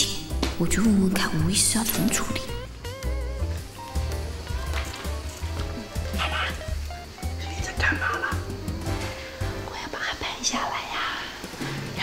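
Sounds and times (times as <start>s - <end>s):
soft background music: 0.0s - 12.0s
woman whispering: 9.6s - 11.4s.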